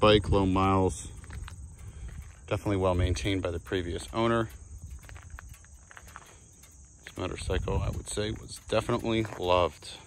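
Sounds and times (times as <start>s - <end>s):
insects chirring: 0.0s - 10.0s
soft footsteps: 0.9s - 10.0s.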